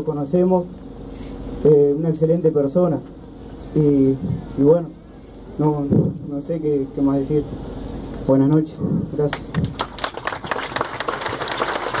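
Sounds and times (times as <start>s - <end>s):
crowd applauding: 9.6s - 12.0s.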